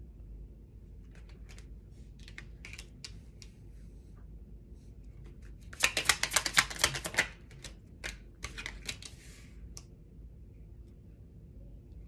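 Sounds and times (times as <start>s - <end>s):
tarot cards being shuffled: 1.0s - 3.6s, 5.3s - 9.5s.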